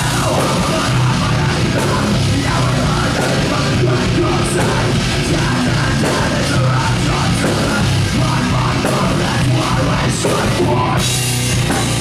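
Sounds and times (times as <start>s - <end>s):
bass guitar: 0.0s - 12.0s
distorted guitar: 0.0s - 12.0s
drums with cymbals: 0.0s - 12.0s.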